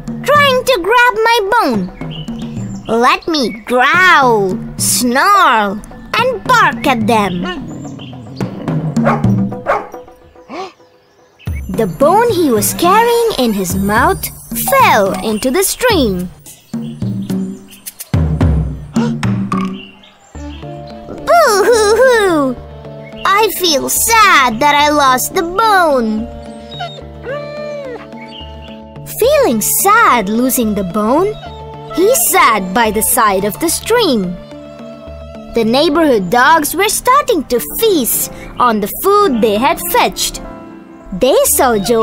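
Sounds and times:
light background music: 0:00.0 - 0:42.0
dog barking: 0:09.0 - 0:10.0
cartoon dog whimper: 0:26.7 - 0:28.1.

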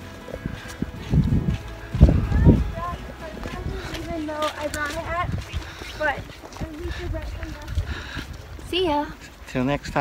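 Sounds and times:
low microphone rumble: 0:00.0 - 0:08.6
indistinct voices talking: 0:00.4 - 0:10.0.

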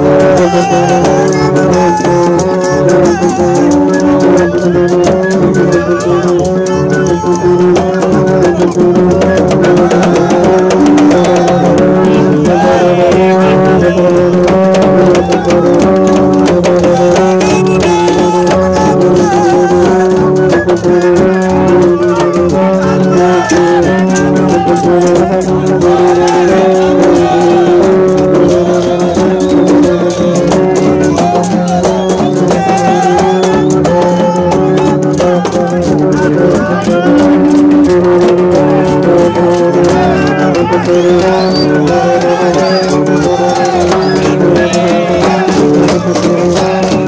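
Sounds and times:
drums and rattles: 0:00.0 - 0:47.0
voices singing: 0:00.0 - 0:47.0.

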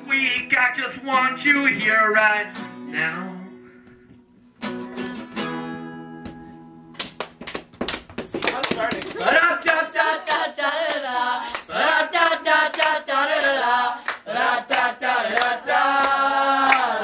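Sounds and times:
hand claps: 0:07.0 - 0:17.0
voices singing wordless melody: 0:09.2 - 0:17.0.

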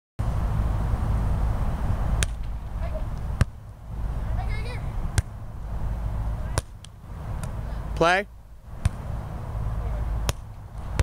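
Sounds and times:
steady low rumble: 0:00.2 - 0:11.0
volleyball smacks: 0:02.2 - 0:02.6, 0:05.1 - 0:05.4, 0:06.5 - 0:07.6, 0:08.8 - 0:09.1, 0:10.2 - 0:11.0.

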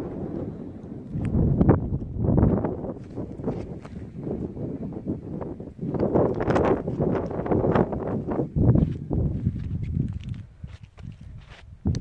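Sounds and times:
wind on microphone: 0:00.0 - 0:12.0
footsteps crunching on stones: 0:02.4 - 0:04.1, 0:06.0 - 0:12.0.

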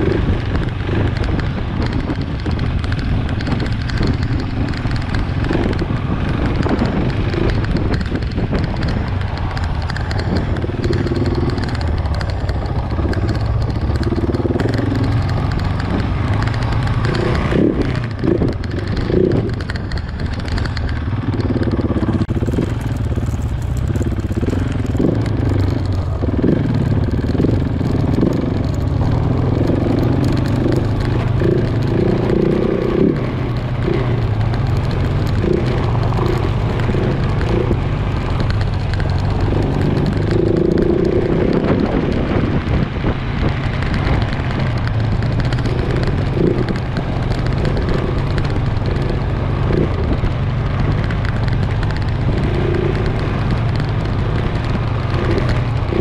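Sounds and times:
motorcycle engine revving: 0:00.0 - 0:56.0
wind noise on microphone: 0:00.0 - 0:56.0.

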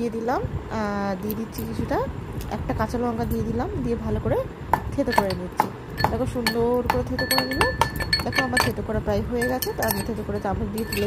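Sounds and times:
woman talking: 0:00.0 - 0:11.0
utensil clinking on steel cup: 0:05.1 - 0:11.0.

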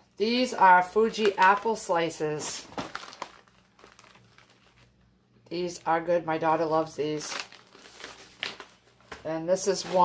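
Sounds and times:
plastic pouches crinkling: 0:00.7 - 0:05.1, 0:07.0 - 0:10.0.

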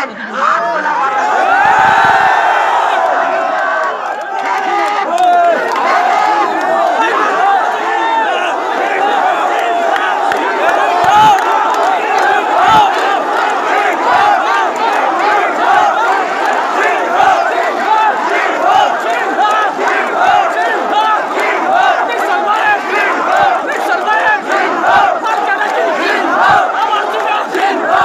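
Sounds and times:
large crowd shouting and cheering: 0:00.0 - 0:28.0.

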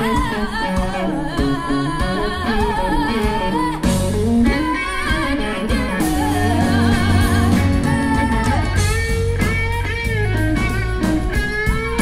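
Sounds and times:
woman singing with vibrato: 0:00.0 - 0:09.0
drums: 0:00.0 - 0:12.0
electric guitar: 0:00.0 - 0:12.0.

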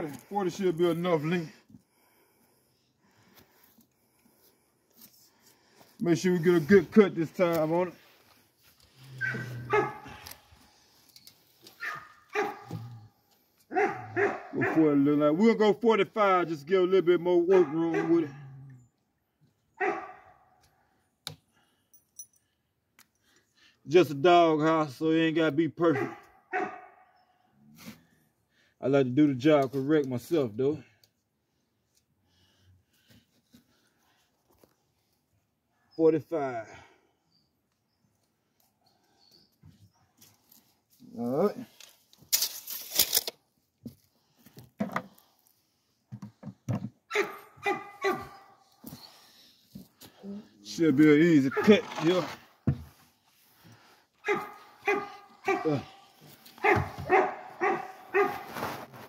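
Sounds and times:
dog barking: 0:09.2 - 0:10.2, 0:11.8 - 0:12.9, 0:13.7 - 0:14.8, 0:17.6 - 0:18.4, 0:19.8 - 0:20.4, 0:25.9 - 0:27.2, 0:47.1 - 0:48.6, 0:54.2 - 0:56.0, 0:56.6 - 0:58.6.

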